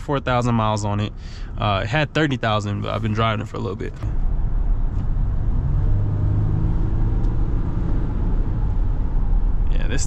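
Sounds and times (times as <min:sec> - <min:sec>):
diesel engine drone: 0:00.0 - 0:10.0
road and tyre noise: 0:00.0 - 0:10.0.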